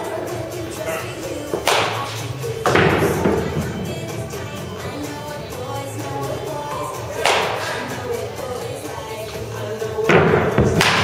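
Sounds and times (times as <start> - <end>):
background music with vocals: 0.0 - 11.0
bat hitting baseball: 1.6 - 2.1, 7.1 - 7.9, 10.3 - 11.0.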